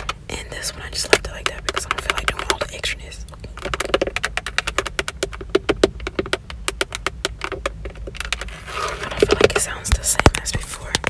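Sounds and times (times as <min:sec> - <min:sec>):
fingernails tapping steering wheel: 0:03.5 - 0:08.6.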